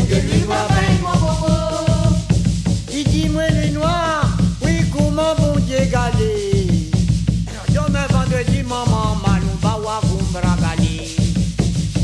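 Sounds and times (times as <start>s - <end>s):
bass and drum pulse: 0.0s - 12.0s
scraping shaker rhythm: 0.0s - 12.0s.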